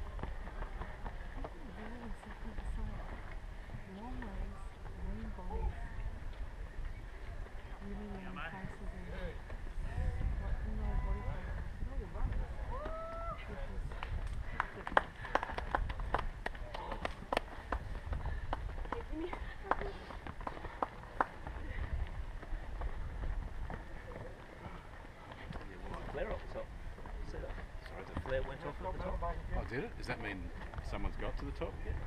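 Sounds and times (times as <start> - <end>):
running footsteps on rocky trail: 0.0 - 32.0.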